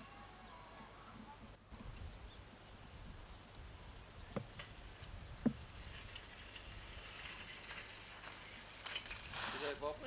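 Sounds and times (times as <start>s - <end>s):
soft high hiss: 0.0s - 10.0s.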